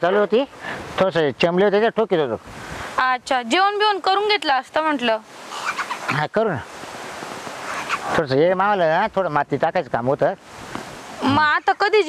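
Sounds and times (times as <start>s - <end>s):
outdoor background hiss: 0.0s - 12.0s
person speaking high-pitched: 11.2s - 12.0s.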